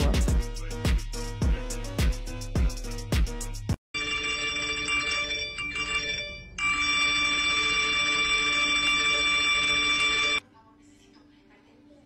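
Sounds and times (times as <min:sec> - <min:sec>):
phone ringing: 0:04.0 - 0:10.4.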